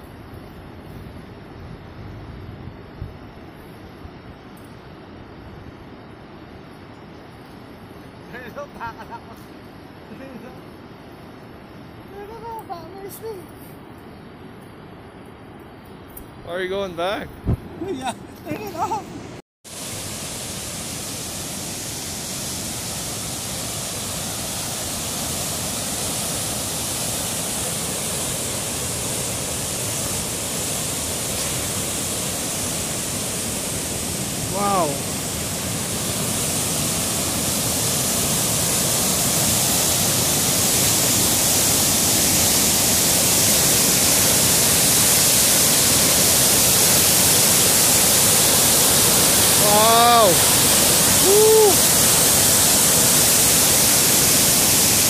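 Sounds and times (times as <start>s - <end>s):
whitewater rushing over waterfall: 19.7s - 55.0s.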